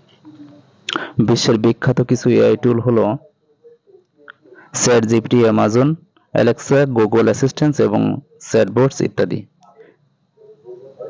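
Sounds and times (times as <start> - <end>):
person reading aloud: 0.2 - 9.8.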